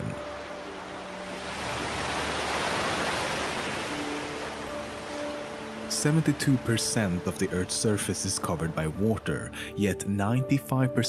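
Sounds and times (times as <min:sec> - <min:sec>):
wave breaking: 0:00.0 - 0:07.4.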